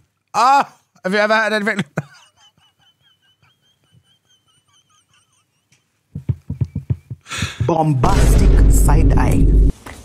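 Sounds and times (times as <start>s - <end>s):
man laughing: 1.5s - 6.1s.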